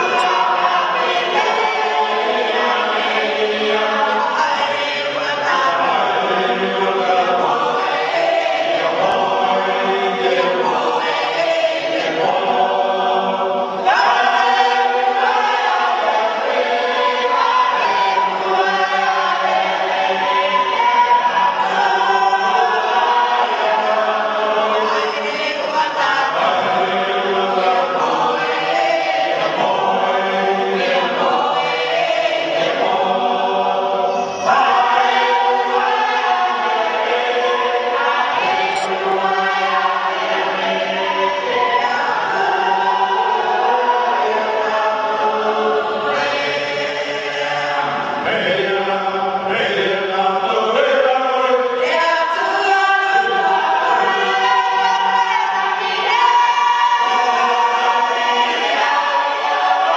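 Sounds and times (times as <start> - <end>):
choir singing in harmony: 0.0 - 59.9.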